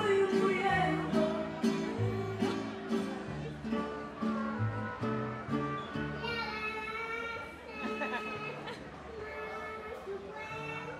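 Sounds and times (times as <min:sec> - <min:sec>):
strummed guitars: 0:00.0 - 0:06.7.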